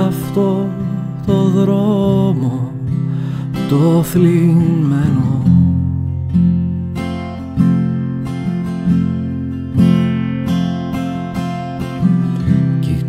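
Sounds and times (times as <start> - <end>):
acoustic guitar strumming chords: 0.0 - 13.0.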